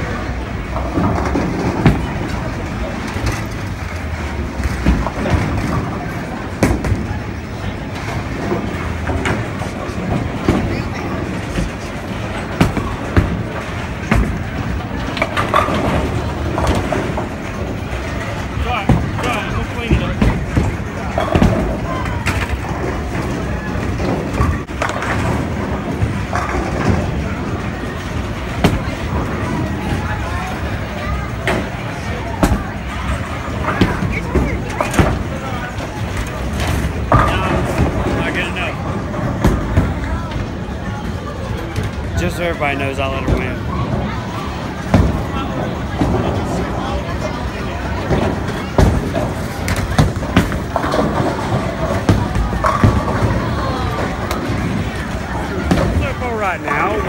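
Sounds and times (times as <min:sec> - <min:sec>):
bowling balls rolling: 0:00.0 - 0:57.0.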